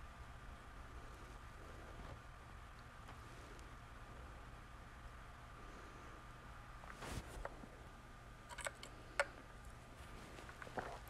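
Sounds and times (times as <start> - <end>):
soft rustle: 6.8 - 7.8, 9.6 - 11.0.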